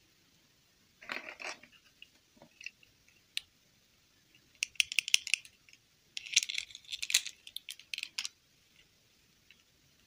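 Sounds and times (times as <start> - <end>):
plastic clicks and rattles: 4.6 - 5.6, 6.2 - 8.4.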